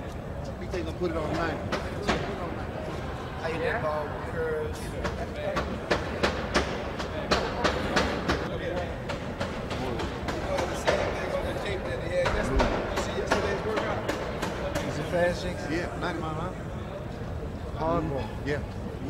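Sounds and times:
low murmured voices: 0:00.0 - 0:19.0.

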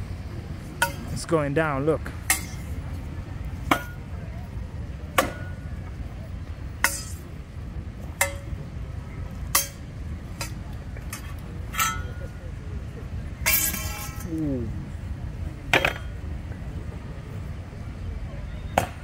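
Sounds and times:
weapons striking wooden shield: 0:05.2 - 0:05.6.

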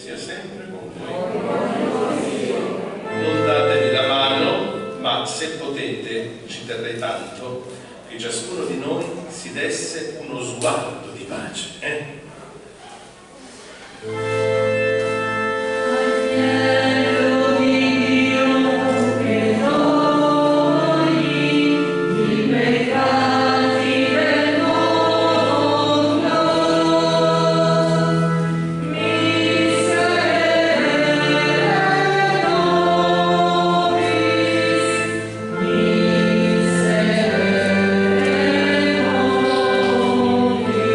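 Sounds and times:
sustained organ chords: 0:00.0 - 0:07.4, 0:14.0 - 0:40.9
choir singing a hymn: 0:00.9 - 0:05.3, 0:14.0 - 0:40.9.

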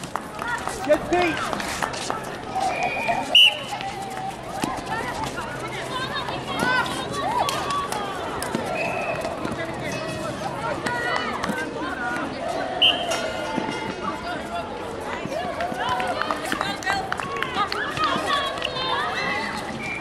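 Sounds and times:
whistle blasts: 0:02.7 - 0:03.7, 0:12.8 - 0:13.2.

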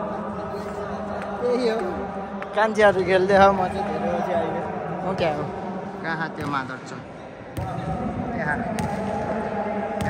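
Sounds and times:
voices echoing in indoor hall: 0:00.0 - 0:10.0
ball bouncing on court: 0:06.4 - 0:06.9, 0:07.5 - 0:09.3.

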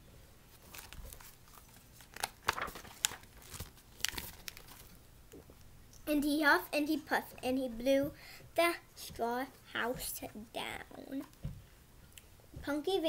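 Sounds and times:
pages rustling and crinkling: 0:00.5 - 0:05.0.

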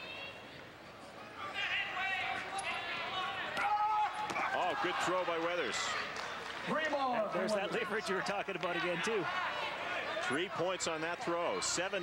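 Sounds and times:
voices shouting: 0:07.3 - 0:11.6.

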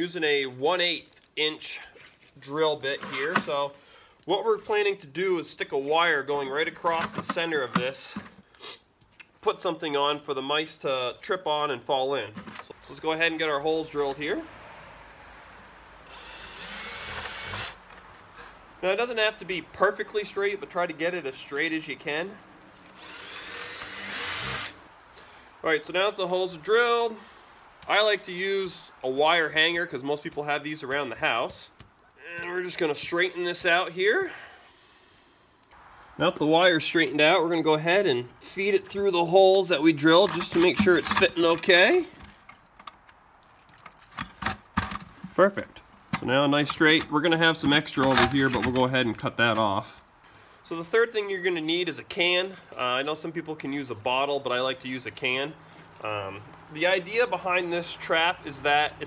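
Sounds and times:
cordless drill boring plastic: 0:16.0 - 0:17.8, 0:22.9 - 0:24.8
wire scraping against plastic: 0:40.1 - 0:43.0, 0:46.0 - 0:48.9.

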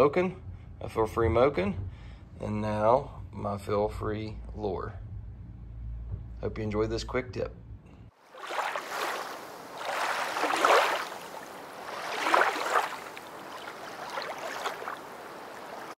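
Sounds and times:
water sloshing: 0:08.2 - 0:16.0.

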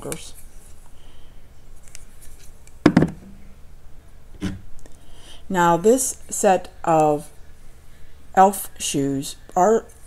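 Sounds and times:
candle holder knocking on table: 0:02.9 - 0:03.2.

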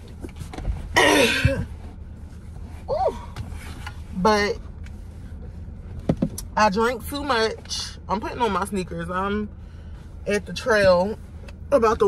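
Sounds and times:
woman clearing her throat: 0:01.0 - 0:01.6.

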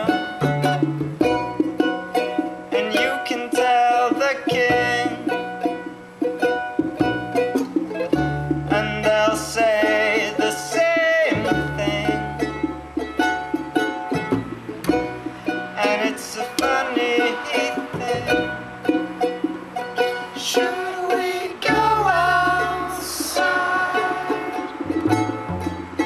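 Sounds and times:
double bass notes: 0:00.0 - 0:26.0
junk percussion: 0:00.0 - 0:26.0
strummed charango: 0:00.0 - 0:26.0
person singing wavering lines: 0:02.3 - 0:06.0, 0:15.4 - 0:26.0.

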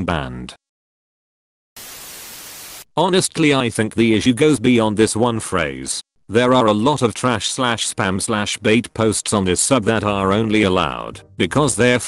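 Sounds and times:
static hiss burst: 0:01.8 - 0:02.9.

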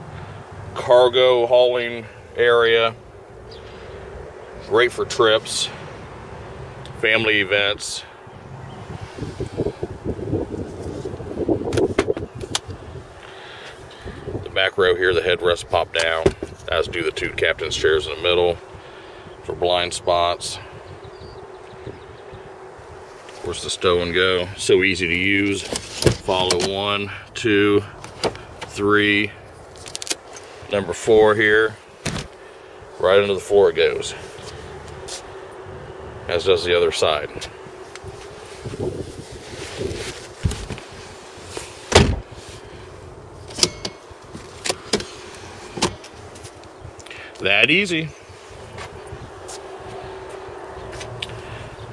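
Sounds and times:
faint constant tone: 0:00.0 - 0:51.9
seat latch clicks and knocks: 0:11.7 - 0:12.7, 0:43.5 - 0:45.1
heavy thump: 0:41.9 - 0:42.3.

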